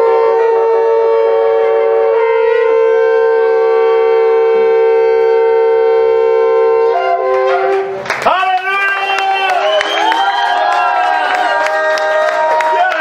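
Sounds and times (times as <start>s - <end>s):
shofar blast: 0.0s - 8.0s.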